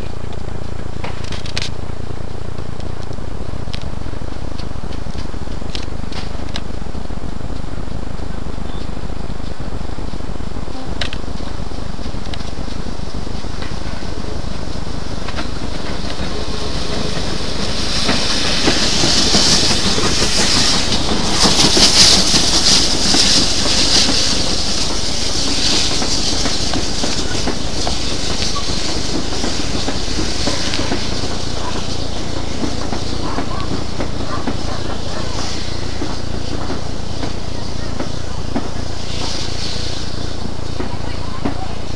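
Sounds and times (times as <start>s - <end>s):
steam locomotive hissing: 0.0s - 41.9s
wheels clacking on rail joints: 0.0s - 41.9s.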